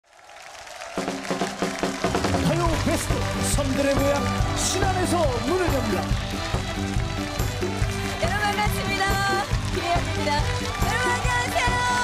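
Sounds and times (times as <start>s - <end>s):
crowd noise: 0.3s - 12.0s
live band playing: 1.0s - 12.0s.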